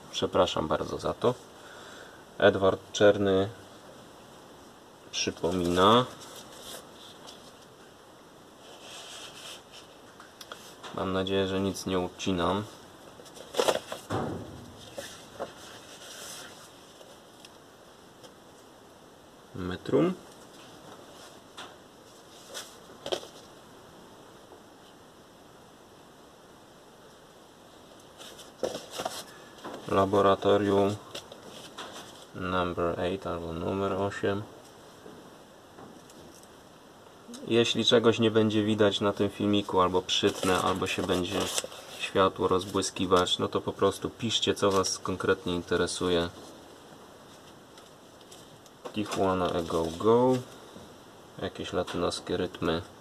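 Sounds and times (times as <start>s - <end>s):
cardboard record sleeve rustling: 5.2s - 7.9s, 8.6s - 11.2s, 12.1s - 17.6s, 20.3s - 23.6s, 28.0s - 32.5s, 38.6s - 50.7s.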